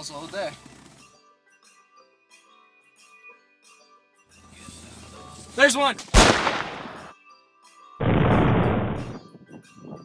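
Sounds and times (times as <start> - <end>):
rifle shot: 6.2 - 7.2, 8.0 - 9.2.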